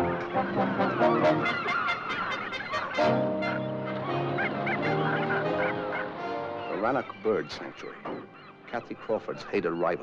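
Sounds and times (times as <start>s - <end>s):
seabirds calling harshly: 0.0s - 10.0s.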